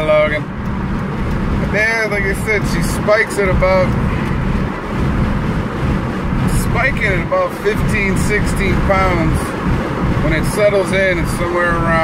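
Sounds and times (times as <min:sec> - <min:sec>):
road and engine noise inside truck cab: 0:00.0 - 0:12.0.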